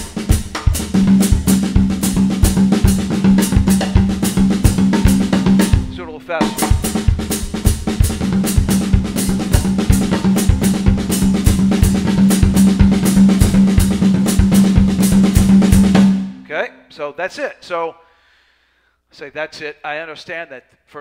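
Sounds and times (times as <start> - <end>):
bass drum: 0.0 - 16.5
rack tom pattern: 0.0 - 16.7.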